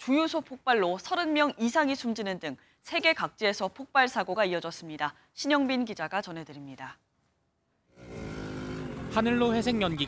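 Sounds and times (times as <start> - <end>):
street noise: 7.9 - 10.0.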